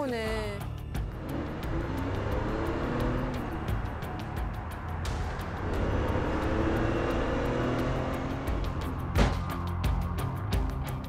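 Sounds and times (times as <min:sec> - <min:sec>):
background music with beat: 0:00.0 - 0:11.0
car engine accelerating: 0:00.6 - 0:11.0.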